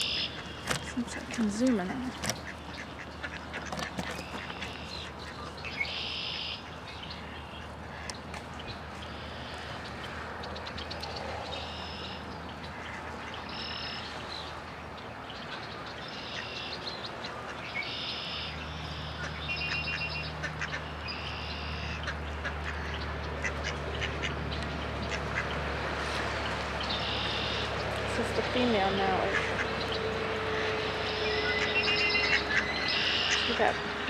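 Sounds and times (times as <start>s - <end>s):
bills pecking seed off gravel: 0.0s - 5.5s
ducks quacking: 0.0s - 8.3s, 9.0s - 14.2s, 15.5s - 34.0s.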